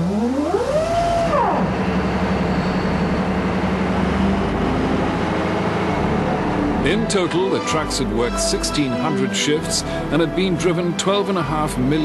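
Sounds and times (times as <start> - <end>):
diesel engine whine and drone: 0.0 - 8.7.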